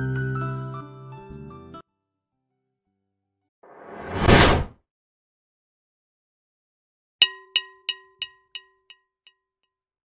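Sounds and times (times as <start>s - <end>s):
whoosh sound effect: 3.7s - 4.7s.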